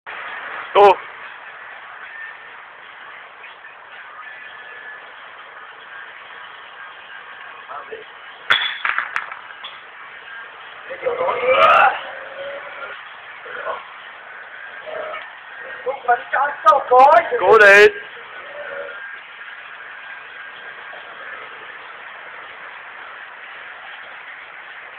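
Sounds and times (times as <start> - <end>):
steady background noise: 0.1 - 24.9
steady hissing noise: 0.1 - 24.9.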